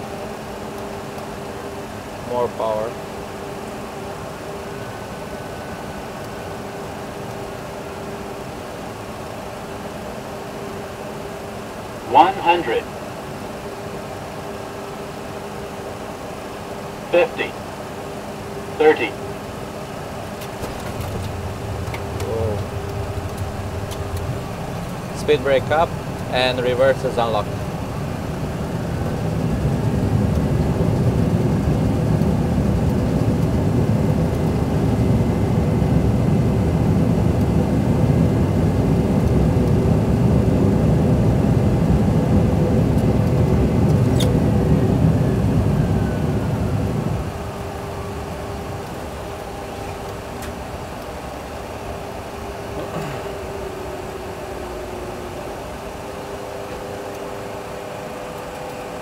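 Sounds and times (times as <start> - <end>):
engines humming at idle: 0.0 - 59.0
high engine whine: 0.0 - 59.0
wheels rumbling on runway: 0.0 - 59.0
engines roaring in reverse thrust: 20.0 - 36.9.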